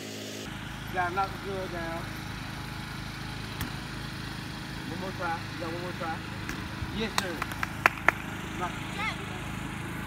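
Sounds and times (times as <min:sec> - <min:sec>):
small engine running: 0:00.0 - 0:10.0.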